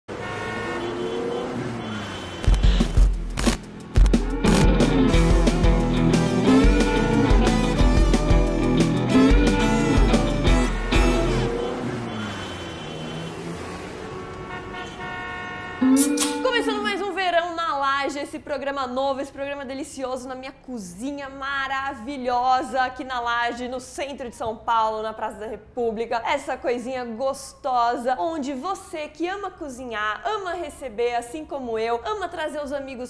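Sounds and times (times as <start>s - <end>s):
car horn: 0.1s - 2.6s, 4.5s - 17.1s
city street traffic: 0.1s - 21.9s
loud pitched sound: 3.4s - 12.2s, 15.8s - 17.2s.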